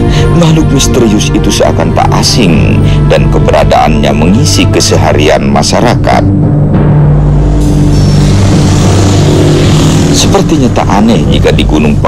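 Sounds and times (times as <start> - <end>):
low drone: 5.4 - 12.0
rushing whoosh: 7.0 - 11.0.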